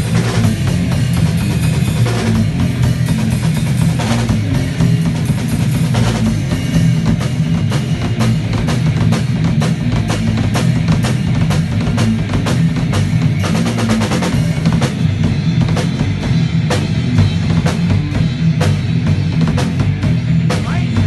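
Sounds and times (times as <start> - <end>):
bass drum and cymbal strikes: 0.0 - 21.0
rock band playing live: 0.0 - 21.0.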